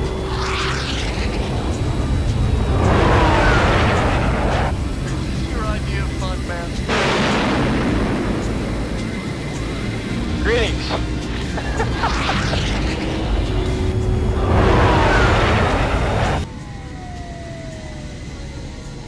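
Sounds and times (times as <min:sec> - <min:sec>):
jet engine roar: 0:00.0 - 0:19.0
low rumble: 0:00.0 - 0:19.0.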